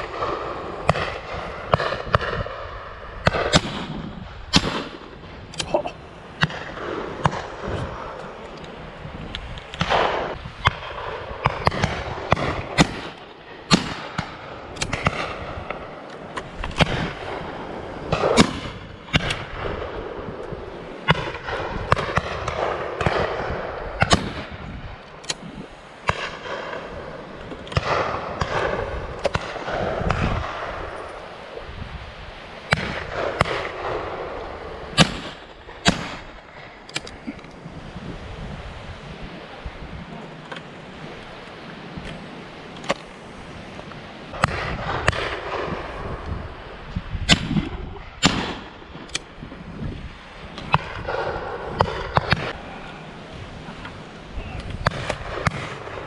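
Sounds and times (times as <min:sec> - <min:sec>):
shotgun shots: 0:03.2 - 0:05.7, 0:09.8 - 0:16.0, 0:18.1 - 0:20.0, 0:27.7 - 0:30.8, 0:32.7 - 0:36.4, 0:47.3 - 0:49.3.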